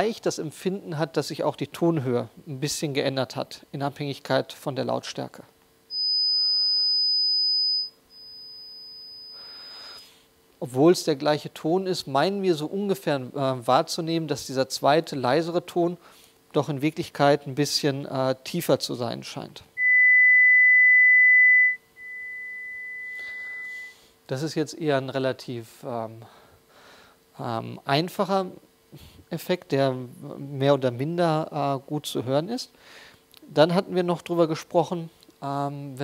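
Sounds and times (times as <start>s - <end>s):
high-pitched test tone: 5.9s - 9.9s, 19.8s - 24.0s.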